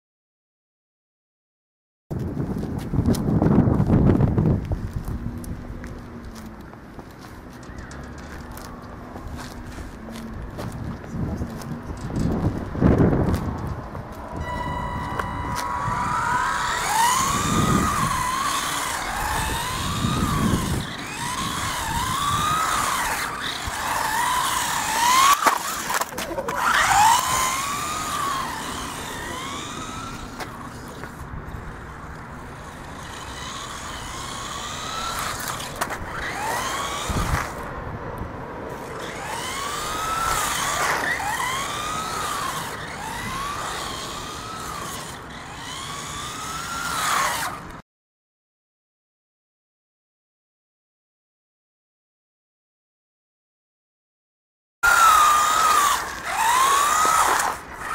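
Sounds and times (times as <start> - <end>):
tyres on asphalt: 2.1 - 47.8, 54.8 - 57.9
electric toy car motor whining: 14.4 - 37.7, 38.7 - 47.8, 54.8 - 57.9.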